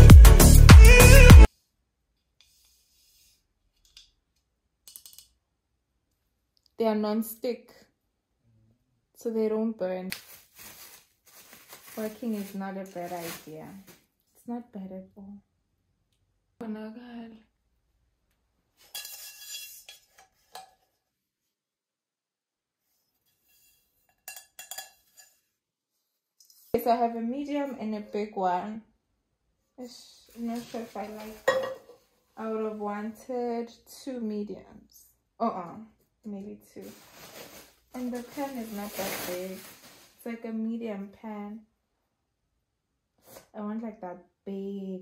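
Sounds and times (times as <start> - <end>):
person speaking: 12.0 - 13.8, 29.9 - 31.6, 38.0 - 40.4
knocks and clinks on metal pan: 24.2 - 25.0, 31.4 - 32.0.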